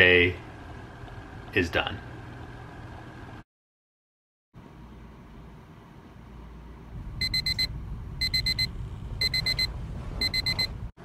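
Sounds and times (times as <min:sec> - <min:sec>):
low steady hum: 0:04.6 - 0:10.9
alarm clock beeping: 0:07.2 - 0:10.7.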